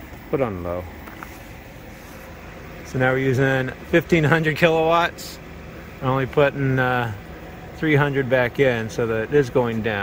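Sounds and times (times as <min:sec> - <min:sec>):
electric fans whirring: 0:00.0 - 0:10.0.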